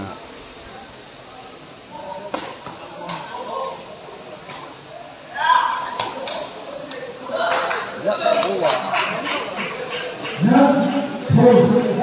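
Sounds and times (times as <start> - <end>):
low crowd murmur: 0.0 - 12.0.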